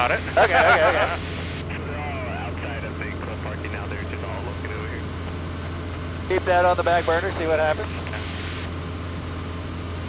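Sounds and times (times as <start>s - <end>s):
faint voice: 0.0s - 5.0s
aircraft engine drone: 0.0s - 10.0s.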